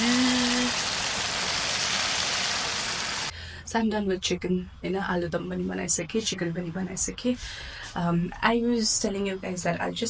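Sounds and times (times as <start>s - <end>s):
curry sizzling in a wok: 0.0s - 3.3s.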